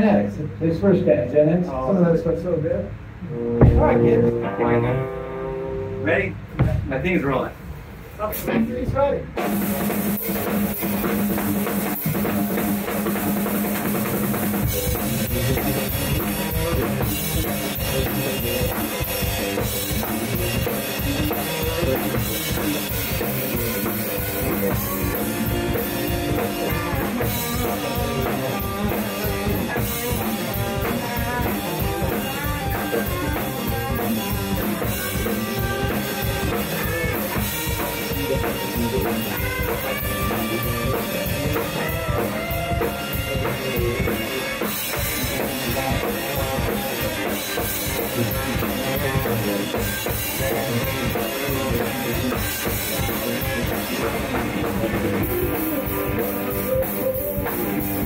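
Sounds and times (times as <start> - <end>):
electric guitars: 3.0 - 7.0, 8.2 - 58.0
drum kit beat: 3.1 - 7.0, 7.8 - 58.0.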